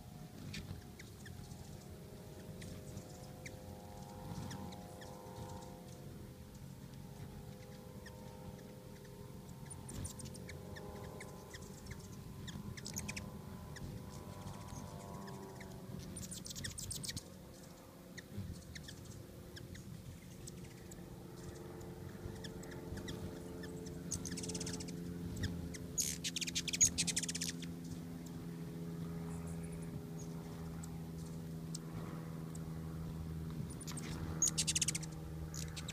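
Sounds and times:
hummingbird wings humming: 0.0s - 35.9s
high squeaky bird chatter: 0.4s - 6.2s, 7.1s - 28.4s, 33.6s - 35.9s.

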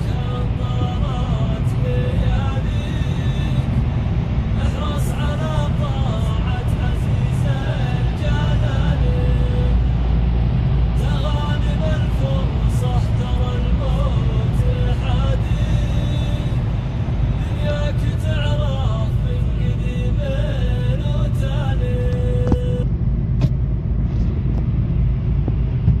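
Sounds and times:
car engine rumble inside cabin: 0.0s - 26.0s.

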